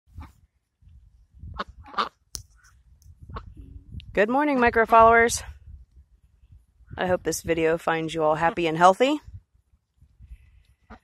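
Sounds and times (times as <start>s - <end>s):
ducks quacking: 1.6s - 2.2s.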